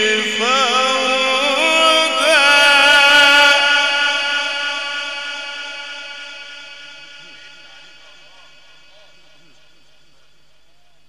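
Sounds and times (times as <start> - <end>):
man reciting melodically: 0.0 - 11.0.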